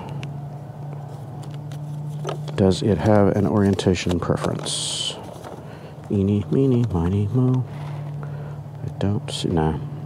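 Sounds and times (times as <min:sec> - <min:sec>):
engine idling hum: 0:00.0 - 0:10.0
paper crinkling: 0:01.0 - 0:07.9.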